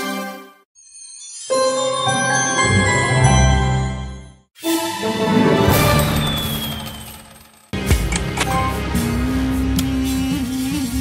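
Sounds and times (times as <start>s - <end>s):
slot machine win jingle: 0.0s - 7.8s
game music: 0.0s - 9.8s
falling whistle: 6.0s - 7.4s.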